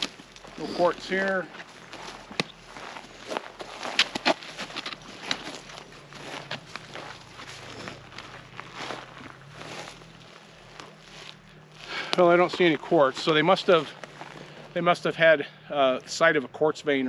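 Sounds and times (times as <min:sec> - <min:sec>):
footsteps crunching through dry grass: 0:00.0 - 0:16.4.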